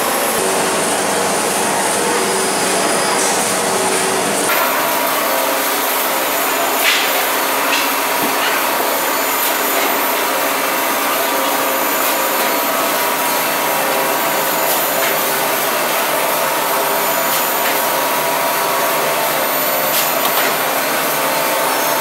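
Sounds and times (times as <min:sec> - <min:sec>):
loud steady machine noise: 0:00.0 - 0:22.0.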